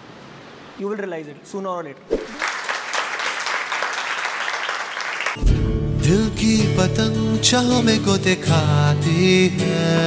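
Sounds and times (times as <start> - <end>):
people clapping: 2.2 - 5.4
background music: 5.4 - 10.0.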